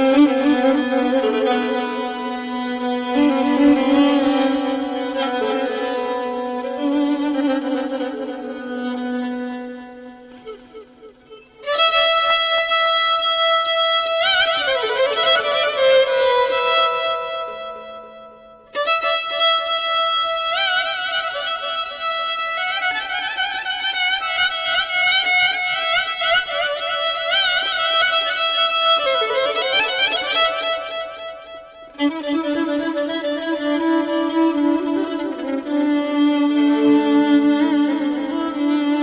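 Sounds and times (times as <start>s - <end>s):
solo violin melody with vibrato: 0.0s - 39.0s.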